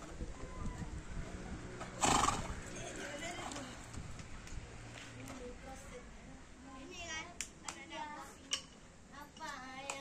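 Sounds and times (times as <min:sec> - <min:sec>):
horse whinnying: 0:02.0 - 0:02.5.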